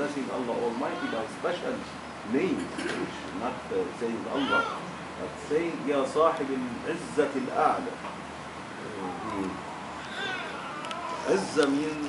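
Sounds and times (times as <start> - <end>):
high-pitched animal calls: 10.0 - 11.5.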